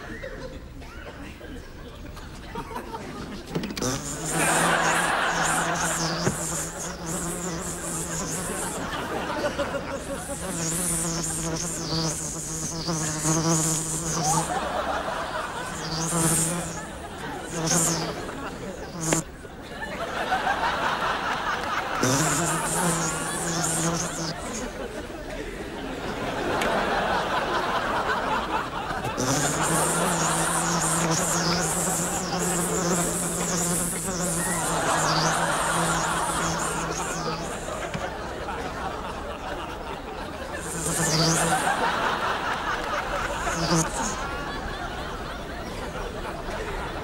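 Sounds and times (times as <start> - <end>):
housefly buzzing: 3.6 - 19.3, 21.8 - 24.6, 29.0 - 38.1, 40.5 - 42.2, 43.2 - 44.3.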